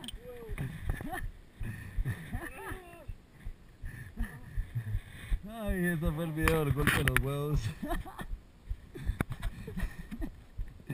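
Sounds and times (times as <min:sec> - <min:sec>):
man chuckling: 0:00.2 - 0:03.2, 0:03.9 - 0:05.1, 0:07.6 - 0:10.4.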